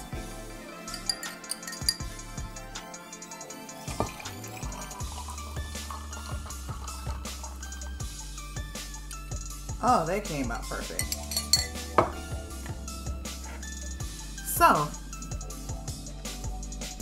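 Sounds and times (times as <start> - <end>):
background music: 0.0 - 17.0
liquid pouring: 0.9 - 2.0, 3.8 - 7.2
ice clinking against glass: 0.9 - 2.1, 3.9 - 5.0, 11.0 - 12.1.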